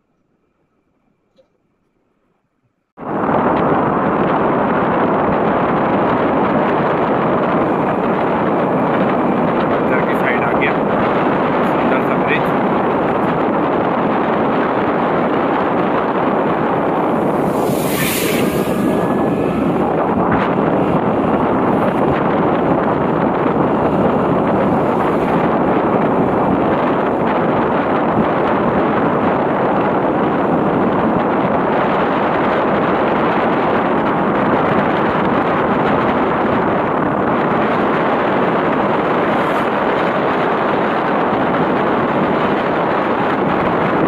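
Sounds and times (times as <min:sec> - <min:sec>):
wind rushing on microphone: 0:03.0 - 0:44.0
sharp hiss: 0:17.3 - 0:19.6.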